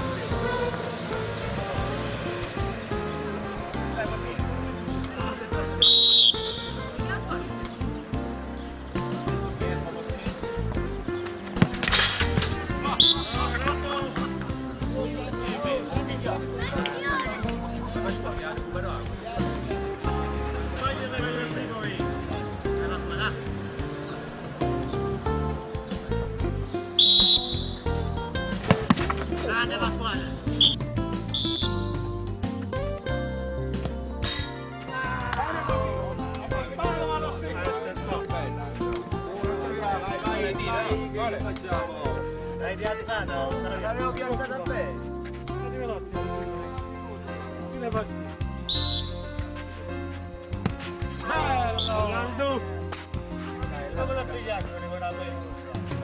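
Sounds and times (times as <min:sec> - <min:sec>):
voices shouting: 0:00.0 - 0:08.2, 0:12.3 - 0:28.4, 0:34.6 - 0:37.8
background music: 0:00.0 - 0:56.0
referee's whistle blasts: 0:05.8 - 0:06.8, 0:13.0 - 0:13.4, 0:27.0 - 0:27.8, 0:30.6 - 0:31.8, 0:48.7 - 0:49.3, 0:51.8 - 0:52.0.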